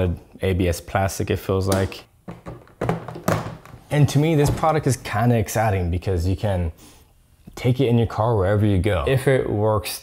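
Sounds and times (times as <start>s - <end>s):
plastic cooler lid knocks and clicks: 1.7s - 3.8s.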